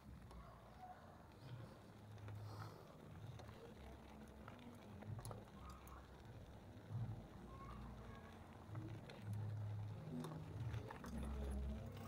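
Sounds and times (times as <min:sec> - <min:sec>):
bicycle rolling over gravel: 0:08.3 - 0:12.0.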